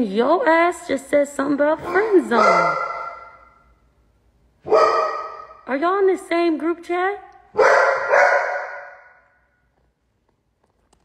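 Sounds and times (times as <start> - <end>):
dog barking: 1.8 - 3.6, 4.6 - 5.6, 7.5 - 9.2.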